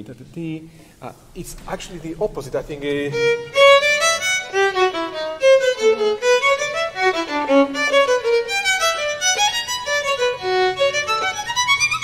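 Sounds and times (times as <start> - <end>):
solo violin melody: 1.4 - 12.0.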